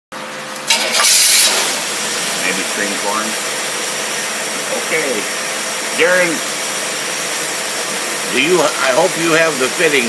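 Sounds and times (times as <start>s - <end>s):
engine mechanical hum: 0.2s - 10.0s
loud hiss: 0.7s - 3.2s.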